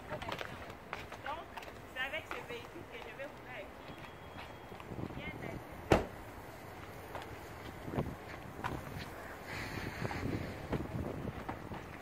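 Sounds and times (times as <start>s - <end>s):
footsteps: 0.0s - 5.2s, 6.0s - 12.0s
wind rumbling on microphone: 4.8s - 5.9s, 6.9s - 12.0s.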